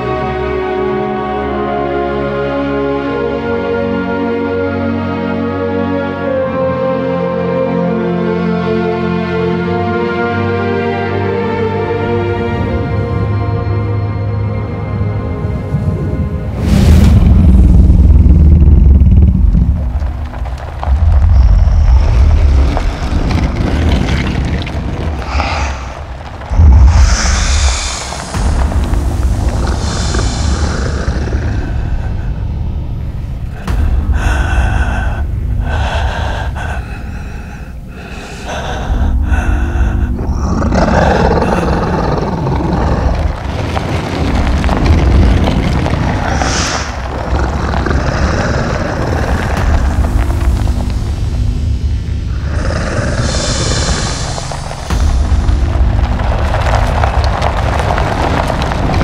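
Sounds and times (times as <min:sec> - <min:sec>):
dramatic film score: 0:00.0 - 0:59.0
heavy low rumble: 0:11.4 - 0:59.0.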